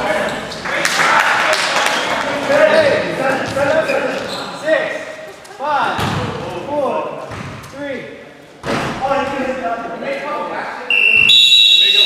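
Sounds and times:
basketball shoes squeaking: 0:03.4 - 0:04.6.

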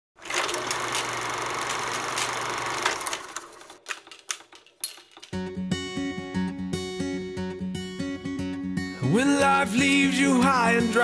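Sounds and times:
film projector whirring: 0:00.2 - 0:03.9.

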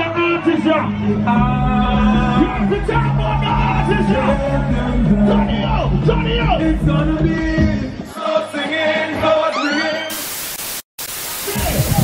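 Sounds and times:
music: 0:00.0 - 0:09.5, 0:11.6 - 0:12.0
white-noise static hiss: 0:10.1 - 0:12.0.

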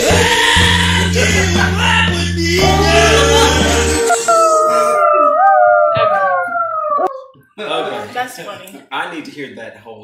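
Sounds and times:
song: 0:00.0 - 0:05.0
dog howling: 0:00.1 - 0:07.4.

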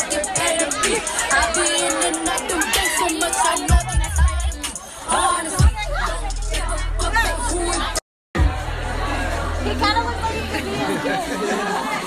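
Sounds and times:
music with heavy bass: 0:00.0 - 0:11.0
crowd talking and shouting: 0:00.0 - 0:12.0.

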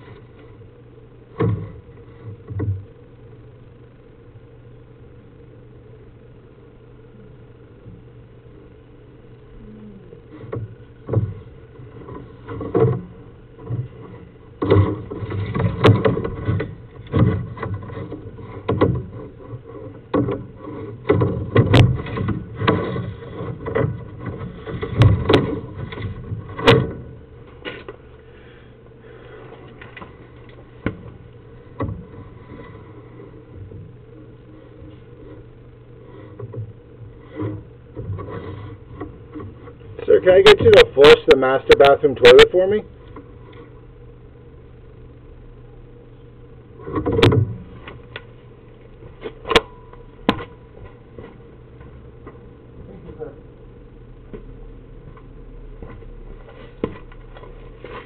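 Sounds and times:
low electrical hum: 0:00.0 - 0:58.0
knocks and clunks of equipment: 0:10.4 - 0:28.0, 0:46.8 - 0:48.3.

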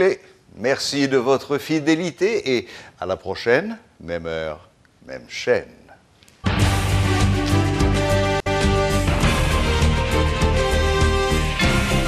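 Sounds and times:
theme music with steady beat: 0:06.4 - 0:12.0.

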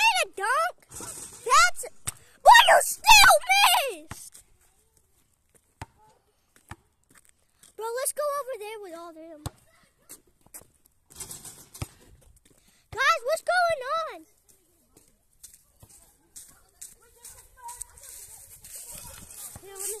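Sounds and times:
young person's wordless voice: 0:00.0 - 0:04.3, 0:07.8 - 0:09.8, 0:12.9 - 0:14.3, 0:16.5 - 0:20.0
footsteps through dry leaves: 0:15.4 - 0:20.0.

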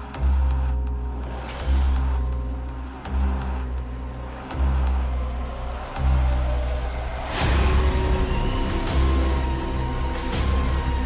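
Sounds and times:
deep bass pulse: 0:00.0 - 0:11.0
sustained drone tones: 0:00.0 - 0:11.0.

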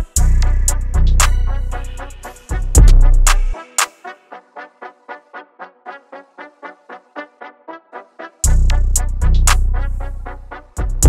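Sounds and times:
deep sustained bass: 0:00.0 - 0:03.6
trap drums: 0:00.0 - 0:04.1, 0:08.4 - 0:11.0.

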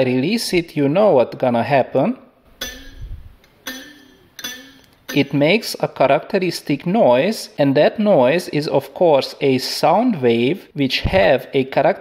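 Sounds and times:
metal spring twang: 0:02.5 - 0:05.5.

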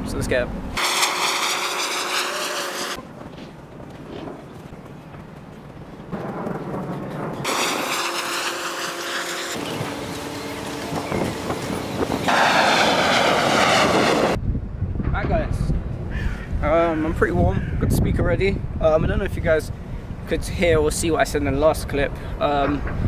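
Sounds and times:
outdoor background noise: 0:00.0 - 0:23.0
aircraft flying overhead: 0:00.6 - 0:14.4.

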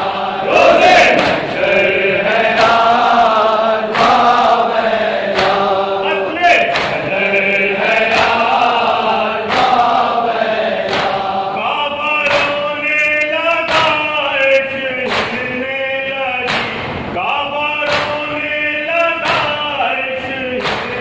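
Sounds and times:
men chanting in unison: 0:00.0 - 0:21.0
sharp struck beat: 0:16.5 - 0:19.8.

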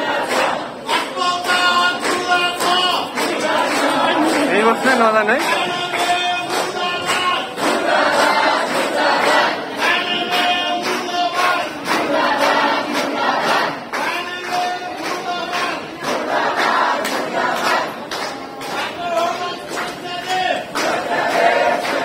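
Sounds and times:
protesters chanting in unison: 0:00.0 - 0:18.0, 0:18.7 - 0:22.0.

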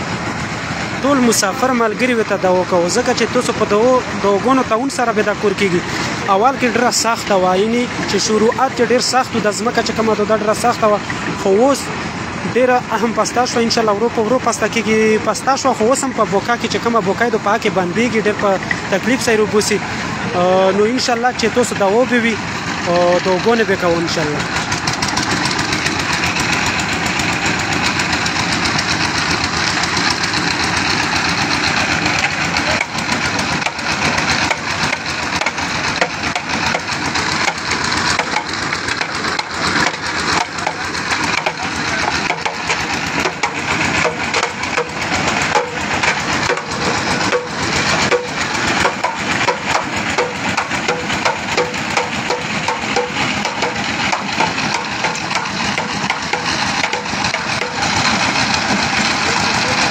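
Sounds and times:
engine-driven winch running: 0:00.0 - 0:59.9.

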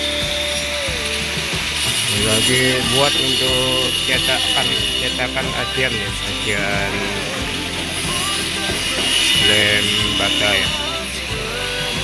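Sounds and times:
angle grinder cutting wood: 0:00.0 - 0:12.0.

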